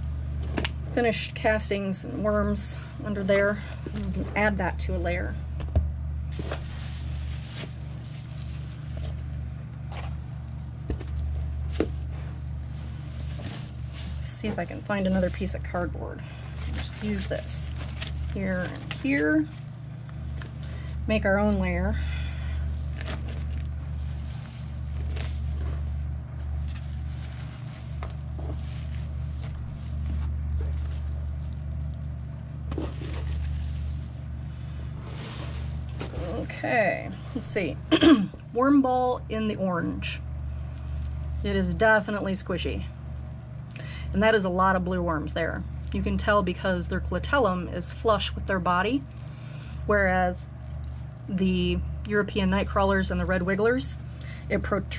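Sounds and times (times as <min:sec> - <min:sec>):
steady low hum: 0:00.0 - 0:54.9
hands rustling through worm castings: 0:06.3 - 0:21.0, 0:22.4 - 0:36.1.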